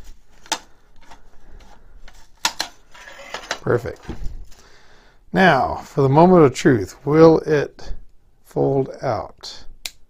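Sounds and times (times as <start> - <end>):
plastic print cracking loose: 2.1 - 2.8.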